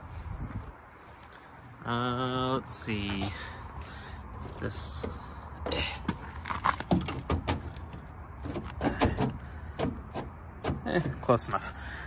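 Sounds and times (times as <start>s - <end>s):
car trim rattling: 3.1s - 11.7s.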